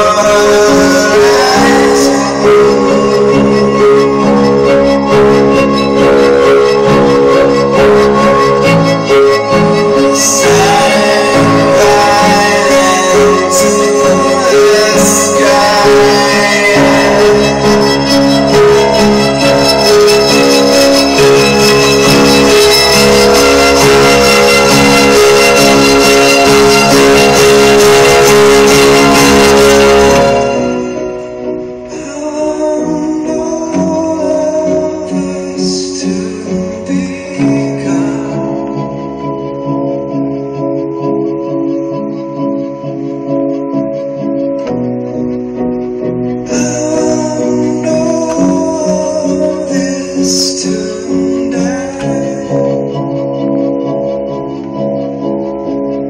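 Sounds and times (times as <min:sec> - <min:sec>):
loud live band music: 0:00.0 - 0:32.4
quiet sustained notes: 0:00.0 - 0:56.0.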